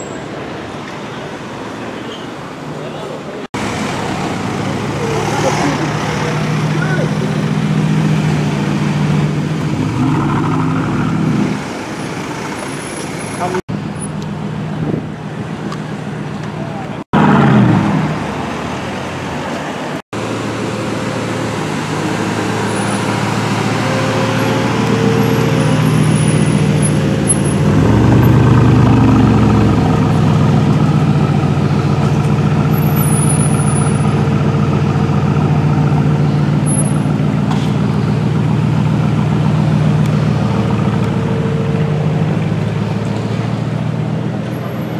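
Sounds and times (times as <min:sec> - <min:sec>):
street traffic: 0:00.0 - 0:44.9
voices: 0:00.2 - 0:07.7
car engine running and revving: 0:03.6 - 0:13.6, 0:20.2 - 0:44.8.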